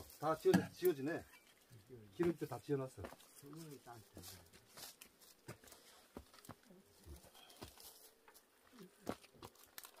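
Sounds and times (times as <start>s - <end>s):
food wrappings rustling: 9.2s - 10.0s.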